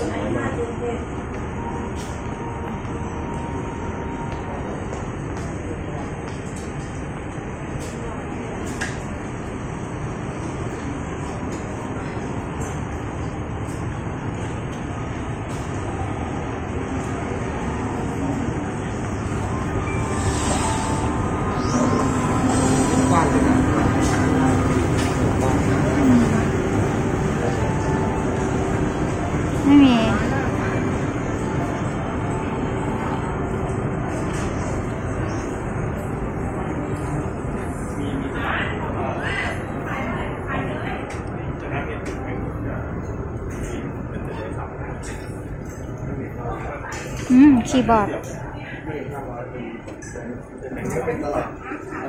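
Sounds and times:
shopping centre hum and hiss: 0.0 - 52.0.

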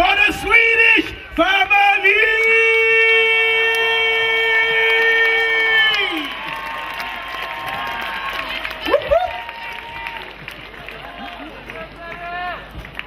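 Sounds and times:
man shouting through pa system: 0.0 - 6.1
audience cheering: 1.4 - 13.0.

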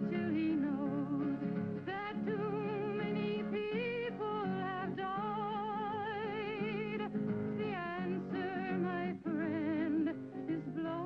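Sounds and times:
woman singing with vibrato: 0.0 - 11.0.

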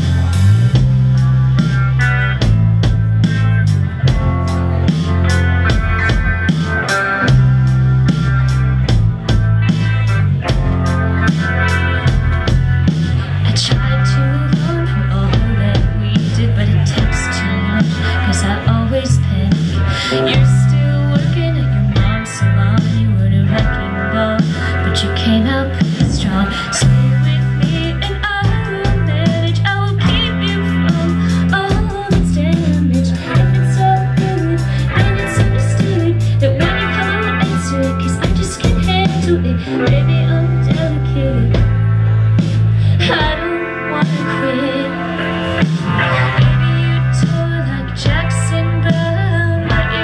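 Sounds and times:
bass line: 0.0 - 50.0
drum kit: 0.0 - 50.0
electric guitar chords: 0.0 - 50.0.

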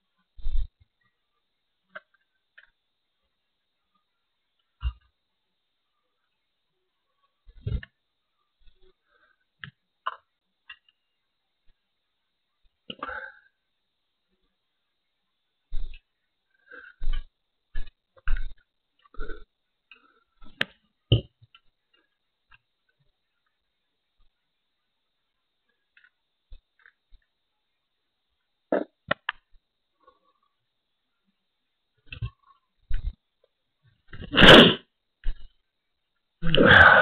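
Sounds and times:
person sneezing: 34.2 - 34.8, 36.4 - 37.0.

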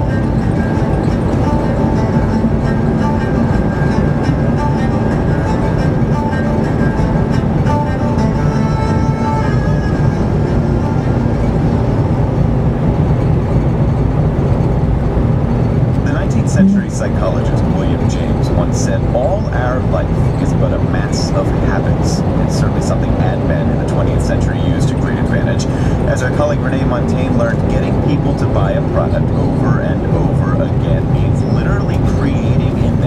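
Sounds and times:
car road and engine rumble: 0.0 - 33.0
faint radio voice: 16.1 - 33.0.

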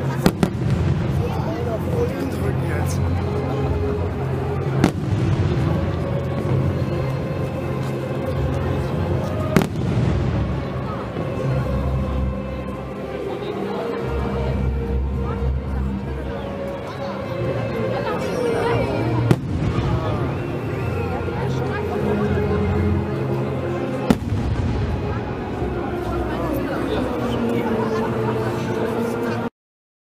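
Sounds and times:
music: 0.0 - 29.5
voices: 0.0 - 29.5.

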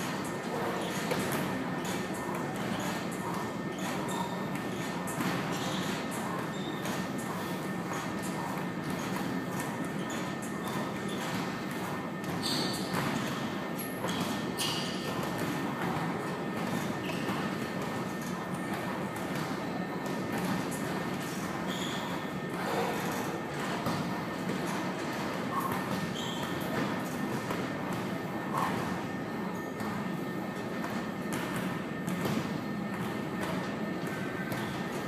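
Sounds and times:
gym room background noise: 0.0 - 35.0.

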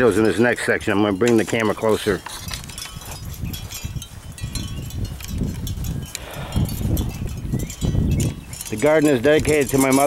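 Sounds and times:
light clicks and clinks: 0.0 - 10.0
wind rumble on microphone: 0.8 - 10.0.

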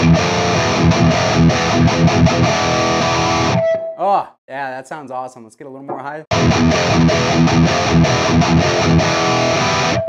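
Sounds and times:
distorted electric guitar riff: 0.0 - 3.9, 6.3 - 10.0.

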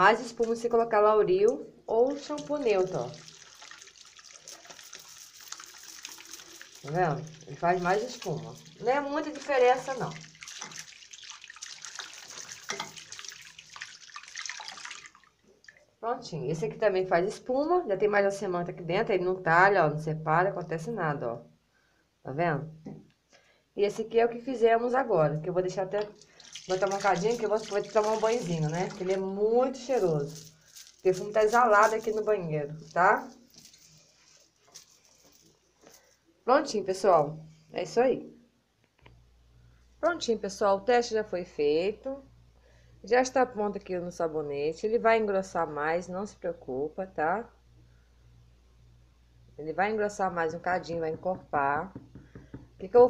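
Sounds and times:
hands rubbing and splashing: 2.1 - 15.8, 26.2 - 35.5
water running from tap: 2.1 - 15.8, 26.0 - 33.8.

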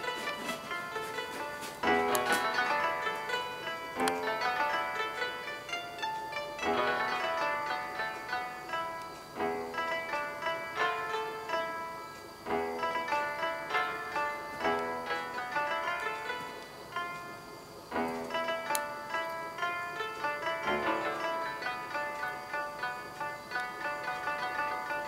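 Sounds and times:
plucked zither-like strings: 0.0 - 25.0.

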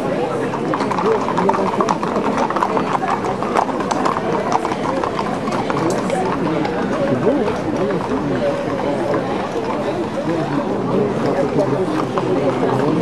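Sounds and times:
horse hooves on asphalt: 0.5 - 10.5.

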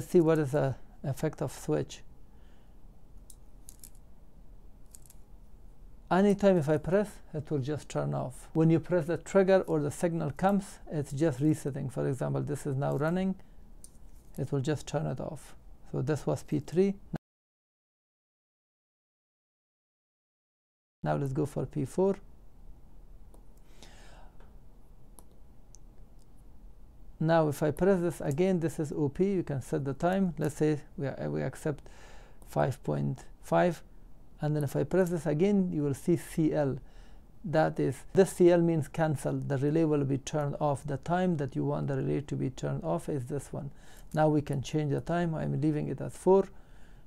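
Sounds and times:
soft hiss: 0.0 - 17.2, 21.1 - 47.0.

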